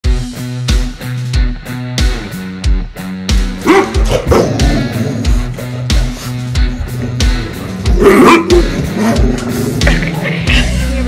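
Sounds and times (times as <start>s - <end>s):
rock music with electric guitar: 0.0s - 11.0s.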